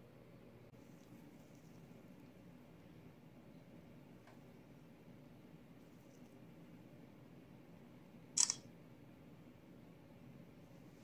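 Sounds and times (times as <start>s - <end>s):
phone camera shutter click: 8.4s - 8.6s.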